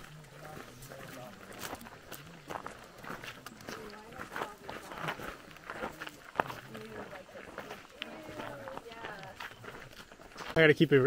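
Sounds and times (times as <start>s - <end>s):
faint background talking: 0.0s - 11.0s
footsteps on dirt trail: 0.0s - 11.0s.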